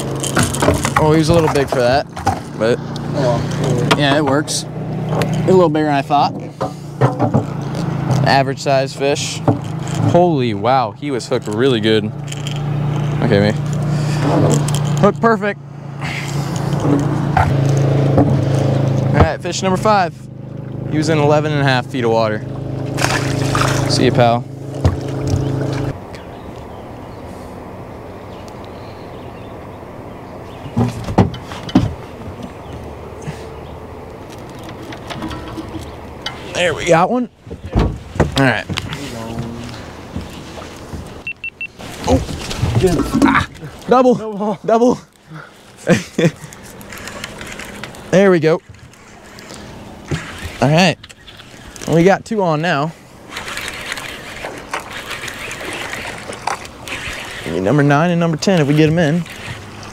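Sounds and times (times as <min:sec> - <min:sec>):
water washing around boat: 0:00.0 - 0:26.1, 0:30.5 - 0:59.9
wind: 0:00.0 - 0:59.9
fishing reels clicking and whirring: 0:11.2 - 0:15.0, 0:46.3 - 0:52.0, 0:53.2 - 0:59.9
knocks on boat deck: 0:24.8 - 0:25.5, 0:37.5 - 0:38.9.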